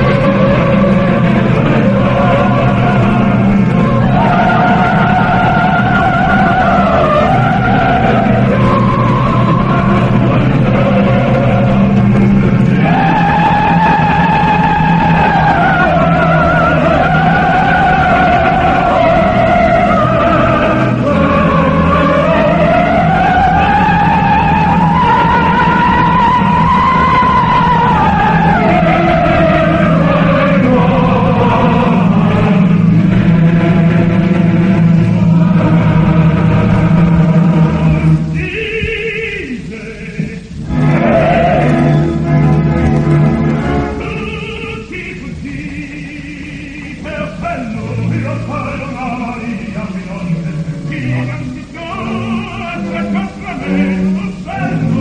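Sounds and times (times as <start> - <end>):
sustained orchestral chord: 0.0 - 38.6, 40.4 - 55.0
opera voice with wide vibrato: 0.0 - 55.0.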